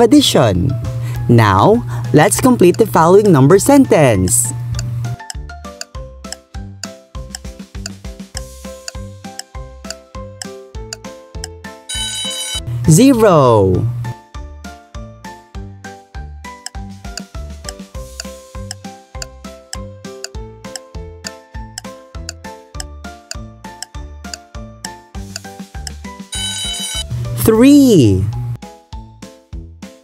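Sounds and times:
light children's music: 0.0 - 30.0
light background music beat: 2.1 - 10.6
cartoon alarm clock bell ringing: 11.9 - 12.6, 26.4 - 27.0.

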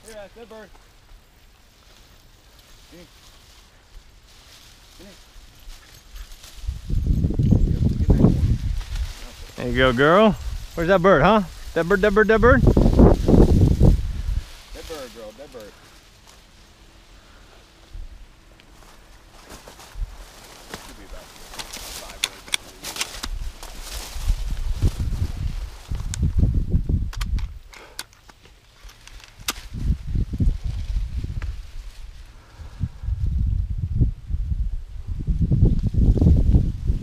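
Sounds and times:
footsteps through dry stalks: 0.0 - 26.6, 28.4 - 32.9
dry stalks brushing and crackling: 0.0 - 34.0
low rumble on microphone: 23.4 - 27.6, 29.7 - 37.0.

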